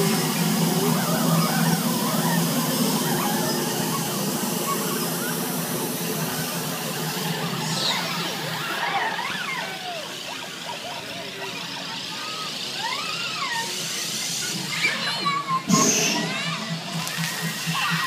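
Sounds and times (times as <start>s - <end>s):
steady low hum: 15.3s - 18.0s.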